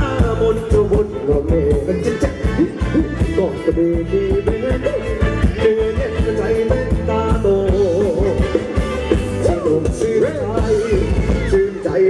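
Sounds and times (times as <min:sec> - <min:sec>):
steady drumbeat: 0:00.0 - 0:11.9
bass: 0:00.0 - 0:12.0
sliding melody line: 0:00.0 - 0:12.0.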